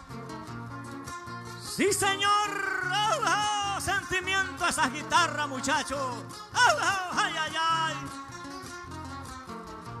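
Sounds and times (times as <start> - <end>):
acoustic guitars strumming: 0.0 - 10.0.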